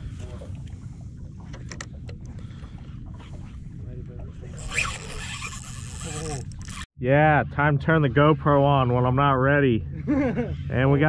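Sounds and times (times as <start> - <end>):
wind rumble on microphone: 0.0 - 6.8.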